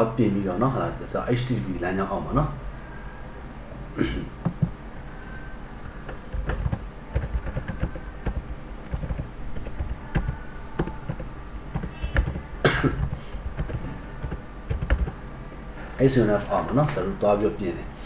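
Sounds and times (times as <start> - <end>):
keyboard key clicks: 5.9 - 12.4.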